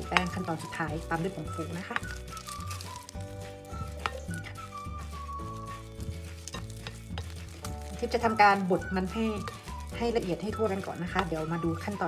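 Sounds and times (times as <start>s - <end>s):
utensil scraping and tapping glass: 0.0s - 11.6s
ladle mashing sweet potato: 0.0s - 12.0s
soft background music: 0.0s - 12.0s.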